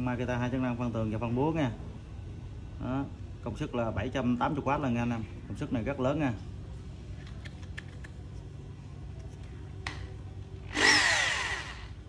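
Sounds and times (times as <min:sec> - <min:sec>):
rotary hammer drill motor whine: 0:10.6 - 0:12.0.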